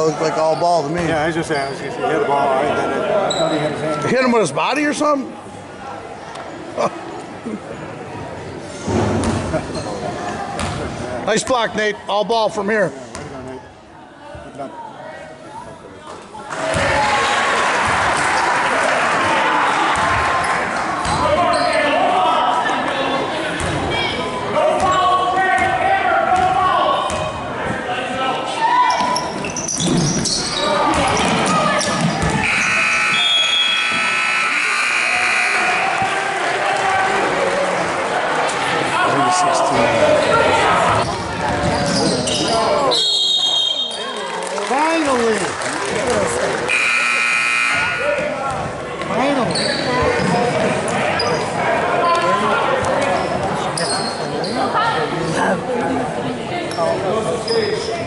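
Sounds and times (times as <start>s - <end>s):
crowd voices: 0.0s - 58.0s
scoreboard buzzer: 32.4s - 36.0s, 46.7s - 48.1s.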